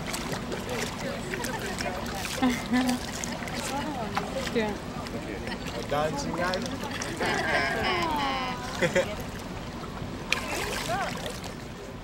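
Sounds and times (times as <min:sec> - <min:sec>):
crowd chattering: 0:00.0 - 0:11.3
water splashing and streaming: 0:00.0 - 0:12.0.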